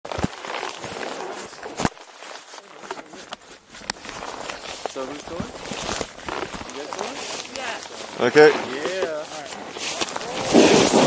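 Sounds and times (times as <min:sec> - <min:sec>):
gloved hands and clothing rustling: 0:00.1 - 0:11.0.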